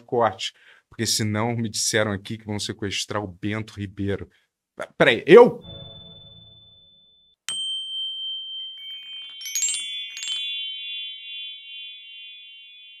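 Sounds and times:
bell-like chimes: 5.6s - 13.0s.

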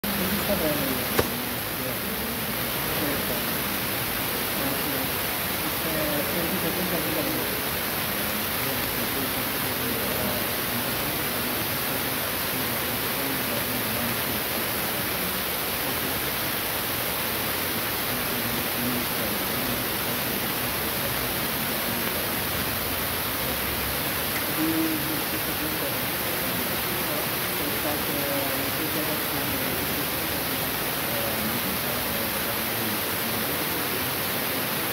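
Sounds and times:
steady hiss: 0.0s - 34.9s.

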